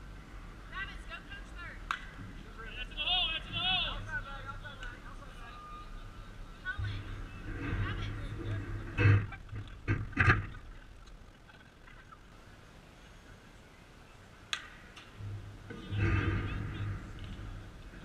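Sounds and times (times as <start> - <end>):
sharp crack: 1.9 - 2.2, 14.5 - 15.2.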